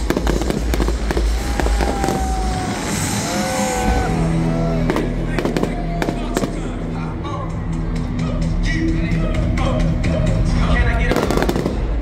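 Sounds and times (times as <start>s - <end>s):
fireworks bangs: 0.0s - 3.9s, 4.8s - 6.8s, 11.1s - 12.0s
music playing: 0.0s - 12.0s.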